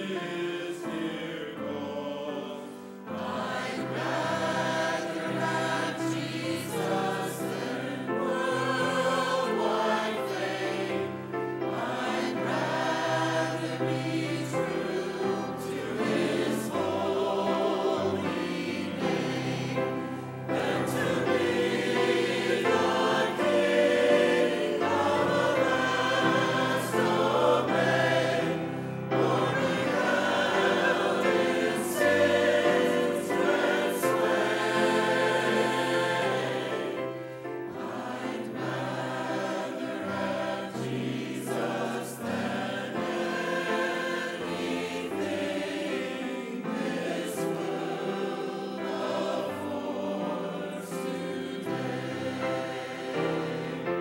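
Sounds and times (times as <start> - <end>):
church choir singing in harmony: 0.0 - 54.0.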